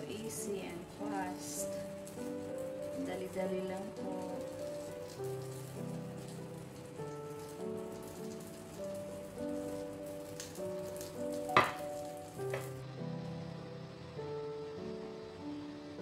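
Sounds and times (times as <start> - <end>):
piano background music: 0.0 - 16.0
sauce sizzling in frying pan: 0.0 - 16.0.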